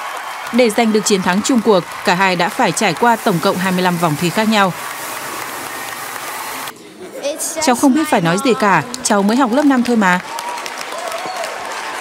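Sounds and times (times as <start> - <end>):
audience applause: 0.0 - 6.7, 8.0 - 12.0.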